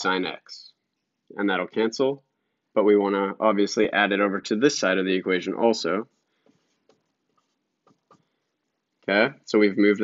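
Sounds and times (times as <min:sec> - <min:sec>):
marker scratching on whiteboard: 0:06.0 - 0:09.1.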